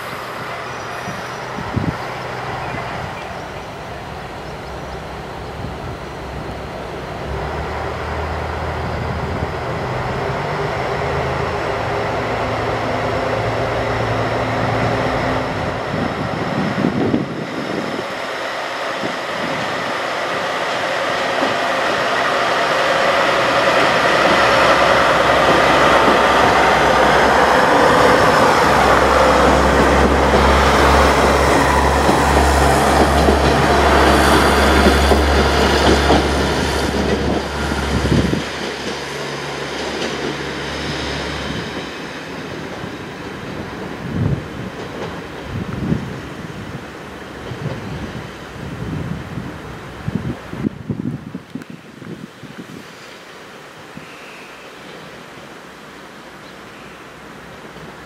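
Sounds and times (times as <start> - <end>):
train engine rumbling pulling away: 0.0 - 51.4
wheel and rail noise: 0.0 - 58.0.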